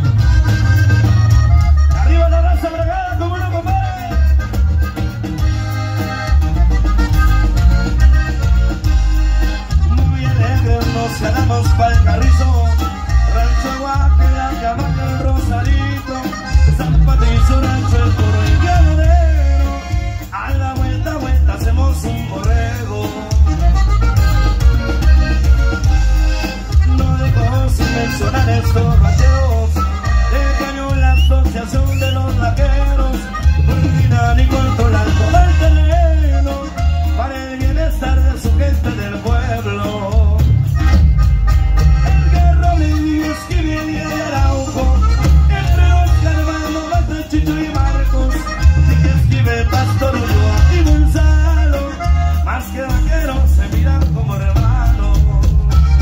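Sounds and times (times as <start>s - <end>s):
drums: 0.0s - 56.0s
live band with accordion: 0.0s - 56.0s
pulsing bass: 0.0s - 56.0s.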